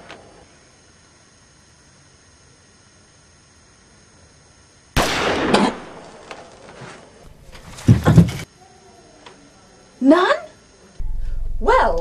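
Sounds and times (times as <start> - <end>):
loud gunshot: 5.0 - 6.0
loud burst: 5.0 - 6.1.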